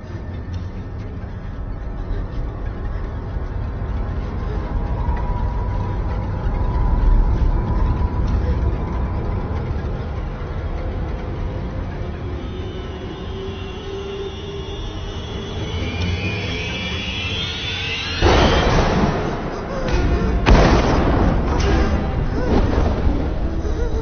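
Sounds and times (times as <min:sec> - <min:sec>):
low rumbling horror drone: 0:00.0 - 0:24.0
high sustained tones: 0:00.8 - 0:24.0.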